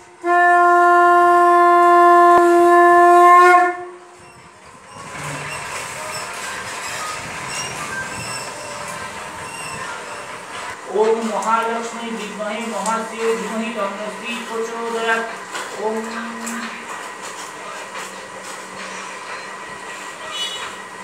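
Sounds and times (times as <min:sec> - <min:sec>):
conch shell blown: 0:00.2 - 0:04.2.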